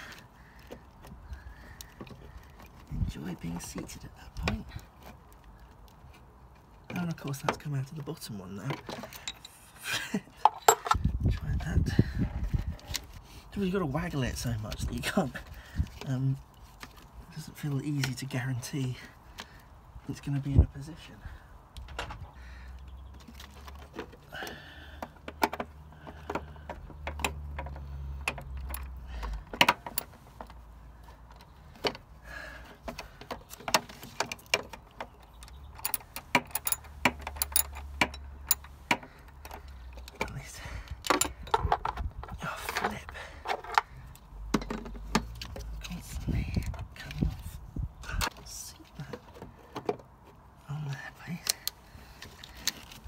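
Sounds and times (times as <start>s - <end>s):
metal clicks and clinks: 9.0s - 9.6s, 10.4s - 11.0s, 27.1s - 30.1s, 34.2s - 40.3s.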